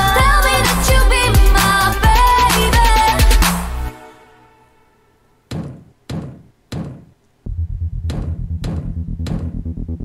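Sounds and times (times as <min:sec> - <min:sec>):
sharp knocks: 0:05.5 - 0:07.2, 0:07.9 - 0:09.7
heavy pulsing bass beat: 0:07.5 - 0:10.0.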